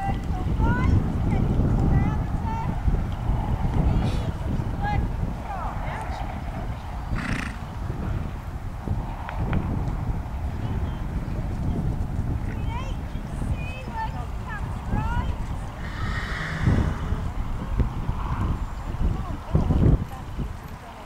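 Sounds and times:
low microphone rumble: 0:00.0 - 0:20.0.

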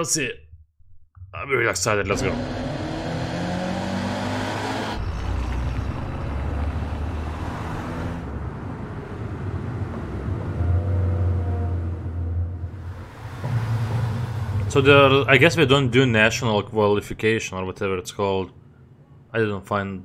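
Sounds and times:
car engine rumbling: 0:01.8 - 0:17.2
road noise: 0:02.1 - 0:17.1.

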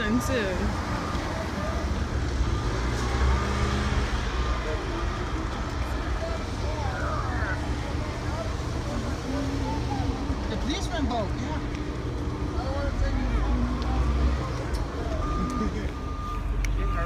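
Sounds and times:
cars driving past: 0:00.0 - 0:17.0
faint voices of people: 0:00.0 - 0:17.0.

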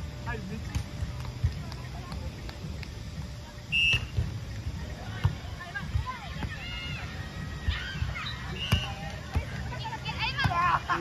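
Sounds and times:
short high whistle blast: 0:03.7 - 0:04.1.

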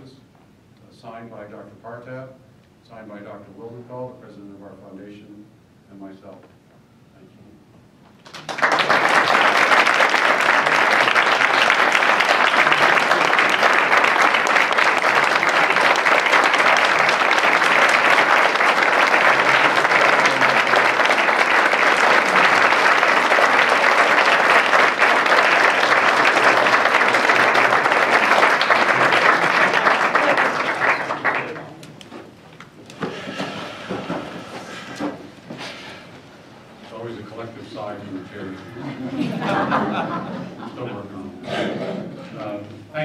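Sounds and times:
audience applauding: 0:08.2 - 0:32.1.

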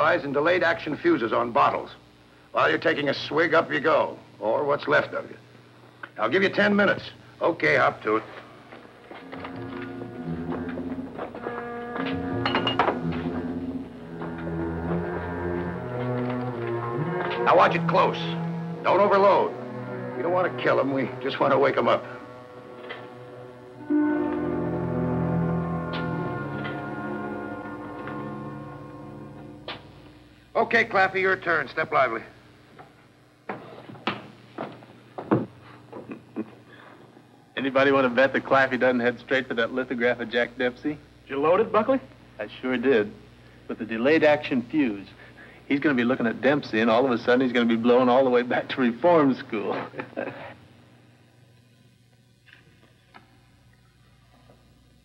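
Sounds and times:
low held score notes: 0:06.8 - 0:32.2.

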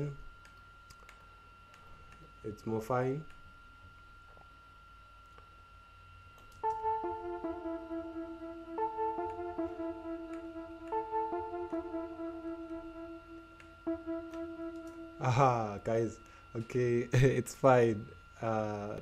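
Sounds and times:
synth lead two-note phrase: 0:06.6 - 0:16.2.

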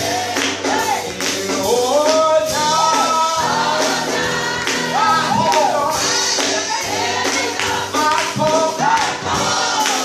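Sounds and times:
keyboard accompaniment: 0:00.0 - 0:10.0
sharp percussive beats: 0:00.0 - 0:10.0
women singing gospel: 0:00.0 - 0:10.0.

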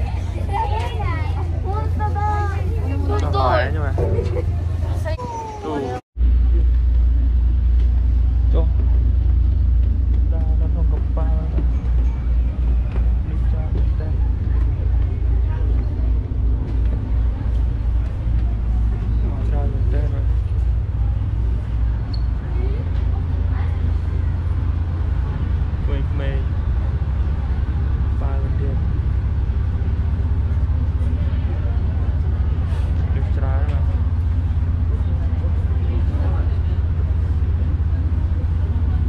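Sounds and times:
people chattering: 0:00.0 - 0:06.9, 0:10.2 - 0:39.0
faint voices: 0:00.0 - 0:07.3, 0:09.9 - 0:39.0
boat engine rumble: 0:00.0 - 0:39.0.

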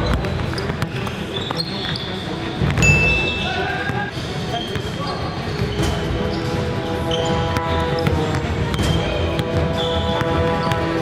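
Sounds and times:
sneakers squeaking: 0:00.0 - 0:11.0.

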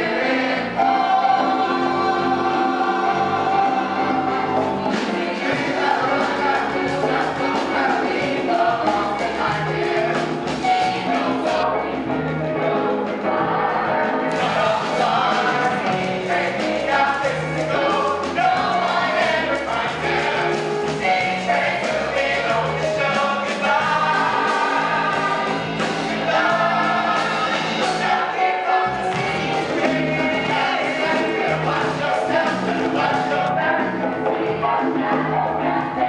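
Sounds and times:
singers holding sustained chord: 0:00.0 - 0:09.7
mixed chorus singing: 0:00.0 - 0:36.0.

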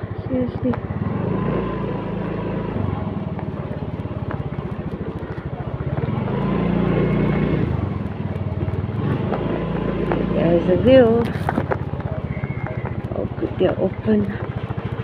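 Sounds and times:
motor scooter engine running: 0:00.0 - 0:15.0.

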